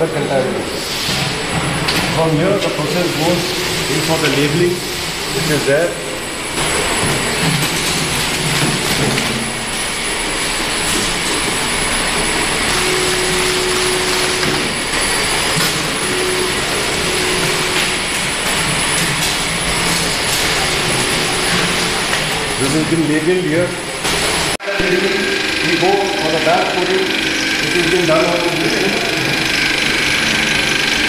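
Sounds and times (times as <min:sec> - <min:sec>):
packaging machinery whirring: 0:00.0 - 0:31.0
thin high whine: 0:08.9 - 0:31.0.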